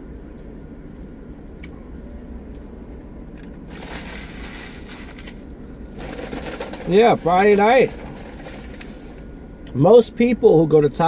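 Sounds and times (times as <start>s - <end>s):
low steady hum: 0.0s - 11.0s
paper wrapper crinkling: 3.7s - 9.2s.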